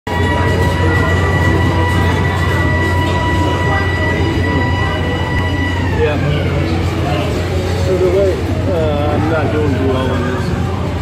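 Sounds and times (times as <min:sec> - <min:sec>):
low machinery rumble: 0:00.1 - 0:11.0
machinery whine: 0:00.1 - 0:11.0.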